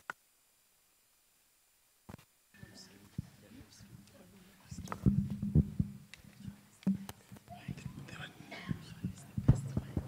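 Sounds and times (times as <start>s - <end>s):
microphone handling knocks: 4.8s - 6.1s, 6.8s - 8.0s, 8.6s - 10.0s.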